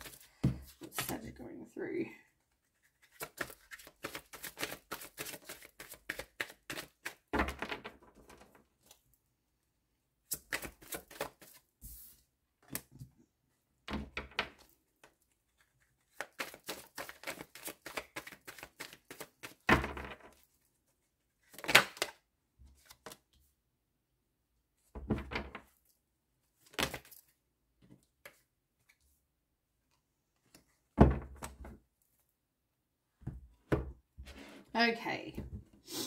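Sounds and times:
cards being shuffled: 0:00.0 - 0:01.2, 0:02.6 - 0:07.3, 0:10.3 - 0:12.1, 0:15.6 - 0:19.7, 0:22.8 - 0:23.2.

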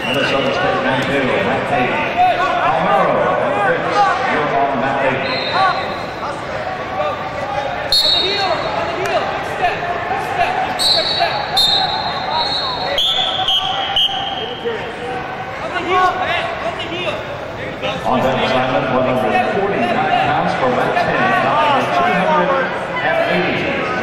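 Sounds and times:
crowd voices and shouting: 0:00.0 - 0:24.0
referee whistle blasts: 0:05.2 - 0:06.1, 0:07.9 - 0:08.7, 0:10.8 - 0:14.6.

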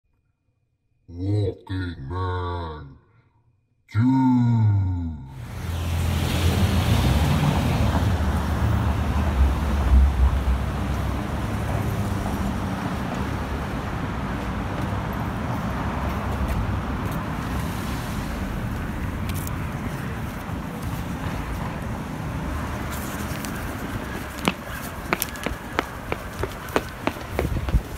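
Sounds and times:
passing traffic: 0:05.3 - 0:27.9
wind buffeting microphone: 0:20.1 - 0:27.9.

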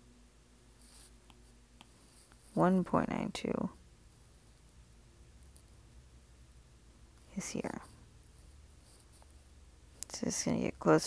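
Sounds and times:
stylus scraping on tablet screen: 0:00.8 - 0:02.9.

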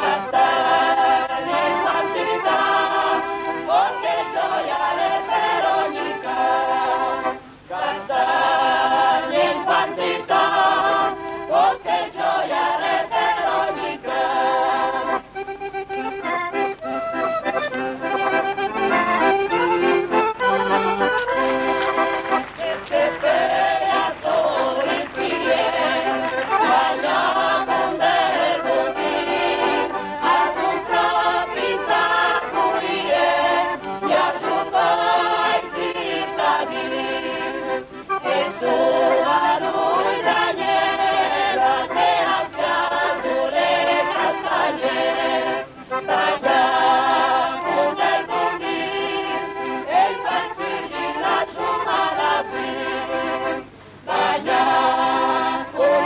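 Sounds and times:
accordion: 0:00.0 - 0:56.0
choir singing folk song: 0:00.0 - 0:56.0.

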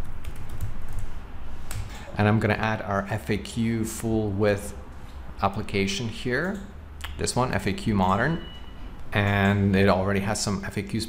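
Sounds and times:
typing on computer keyboard: 0:00.0 - 0:01.1.

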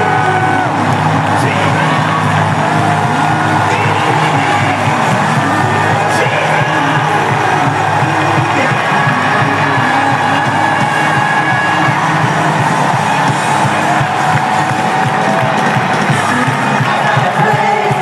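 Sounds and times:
worship song with full band: 0:00.0 - 0:18.0.

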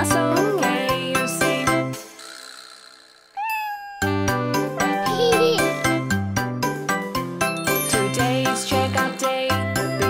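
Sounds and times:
upbeat children's music: 0:00.0 - 0:02.4, 0:04.0 - 0:10.0
cat meow: 0:03.4 - 0:04.2.

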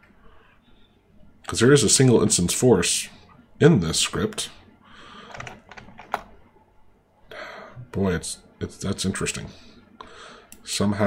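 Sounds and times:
computer keyboard keys clicking: 0:05.3 - 0:06.3.

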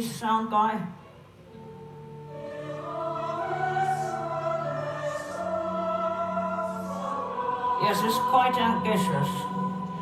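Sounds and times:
choir and orchestra chords: 0:01.4 - 0:10.0.

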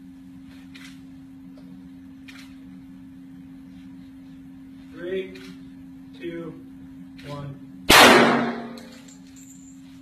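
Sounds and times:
pistol shot echoing indoors: 0:07.9 - 0:09.0.

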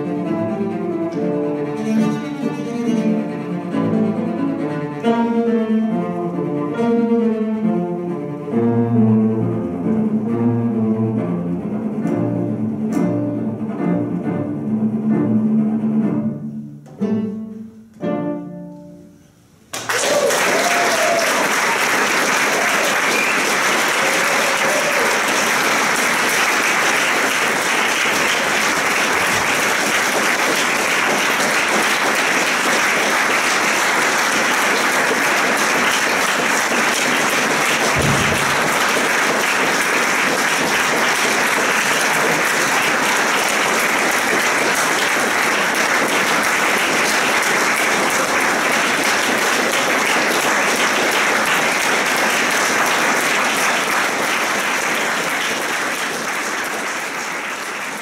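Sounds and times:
audience applauding: 0:19.7 - 0:58.0
low thump: 0:37.9 - 0:38.8.

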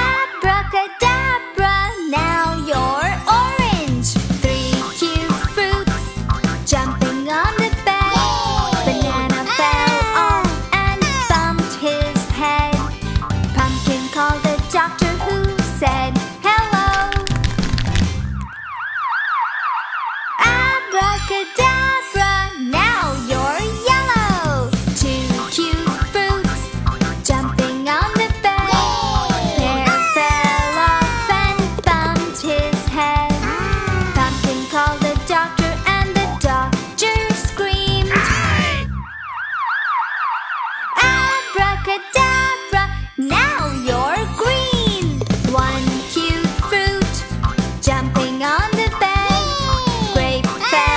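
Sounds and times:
children's song music: 0:00.0 - 0:17.3, 0:20.4 - 0:38.9, 0:41.0 - 0:50.9
cartoon siren warbling: 0:08.1 - 0:11.4, 0:28.7 - 0:31.5
cartoon ambulance siren: 0:18.5 - 0:20.4, 0:38.5 - 0:41.4.

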